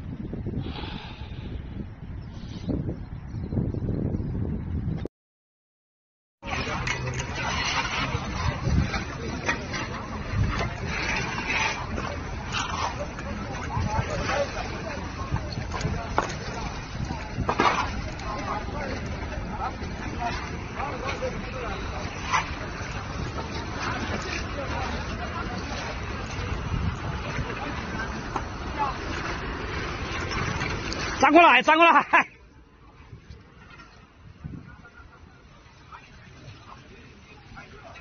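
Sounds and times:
wind buffeting microphone: 0.0 - 5.1, 6.4 - 31.8, 32.6 - 38.0
indistinct voices outdoors: 6.4 - 38.0.

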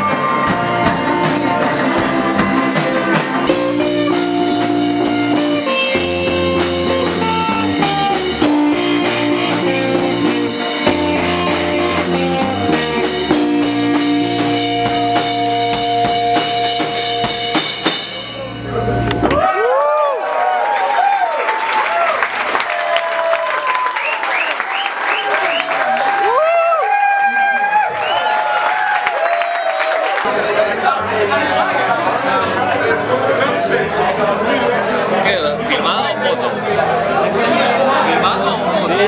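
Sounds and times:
swooping guitar sounds: 0.0 - 19.4
rock band playing: 0.0 - 19.6.

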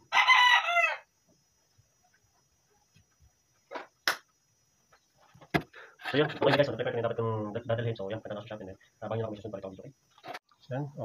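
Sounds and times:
rooster crowing: 0.0 - 1.1.

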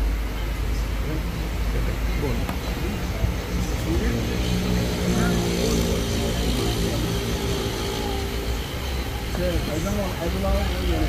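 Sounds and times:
road traffic rumble: 0.0 - 11.0
voices talking: 0.0 - 11.0
vehicle engine passing: 1.0 - 11.0.

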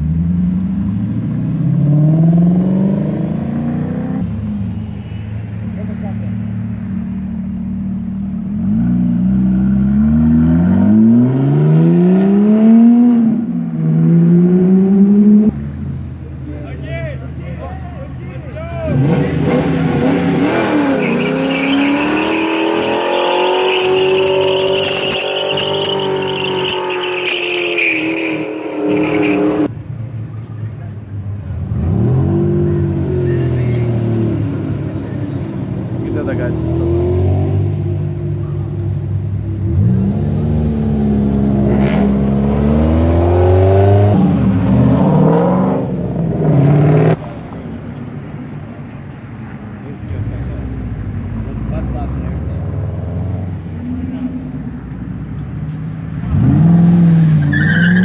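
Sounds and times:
cars accelerating hard: 0.0 - 16.2, 18.8 - 29.7, 31.4 - 48.9, 49.6 - 58.0
engines revving: 0.0 - 58.0.

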